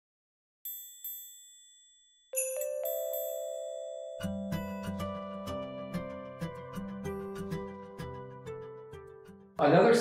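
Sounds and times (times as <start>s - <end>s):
bright chime strikes: 0.7s - 5.4s.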